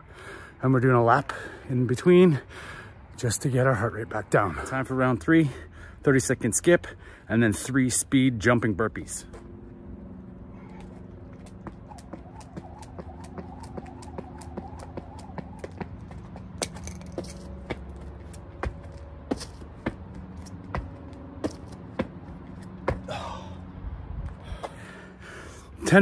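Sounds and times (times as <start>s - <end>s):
steady low hum: 9.3s - 25.8s
jump rope slapping concrete: 10.8s - 22.2s.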